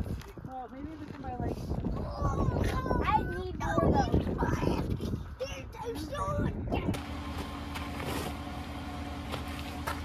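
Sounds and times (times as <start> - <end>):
car engine running: 6.9 - 10.0.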